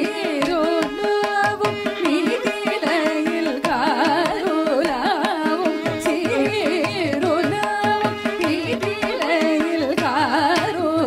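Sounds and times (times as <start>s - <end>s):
violin: 0.0s - 11.0s
woman singing ornamented melody: 0.0s - 11.0s.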